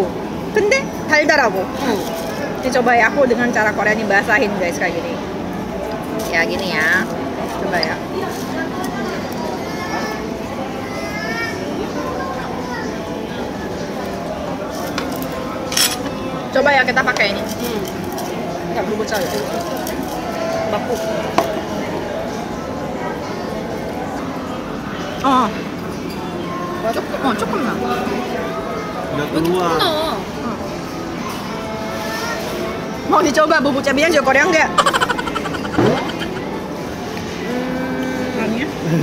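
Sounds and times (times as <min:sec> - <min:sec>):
restaurant chatter: 0:00.0 - 0:39.0
steady background noise: 0:00.0 - 0:39.0
woman humming: 0:37.4 - 0:38.5.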